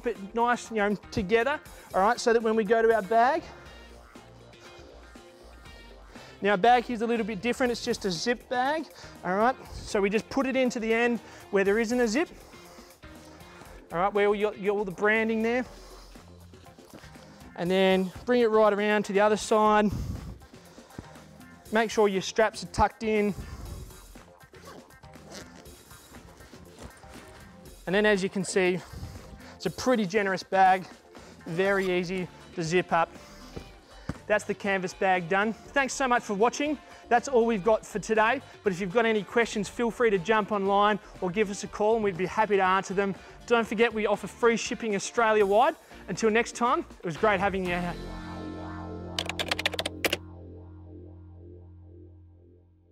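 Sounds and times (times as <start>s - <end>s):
soft background music: 0.0s - 52.6s
sleeping bag rustling: 23.4s - 29.6s
low music pad: 47.6s - 52.9s
keyboard key clicks: 49.2s - 50.2s.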